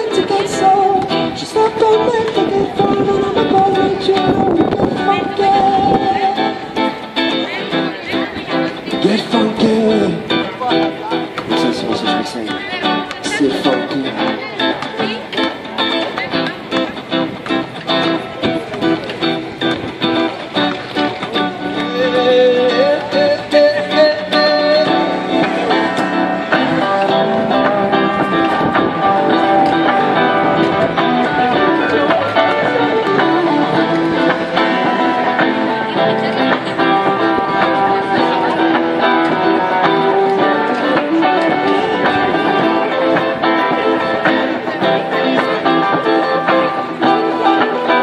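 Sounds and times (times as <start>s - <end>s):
solo guitar strumming: 0.0s - 48.0s.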